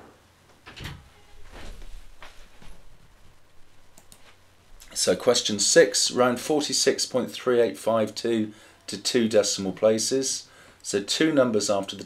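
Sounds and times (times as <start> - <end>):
computer mouse clicks: 4.0 - 4.2.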